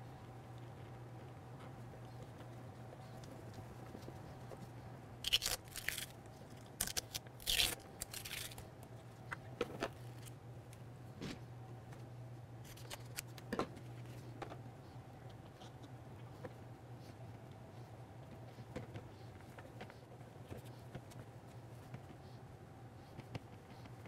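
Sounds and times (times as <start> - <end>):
low steady hum: 0.0 - 24.0.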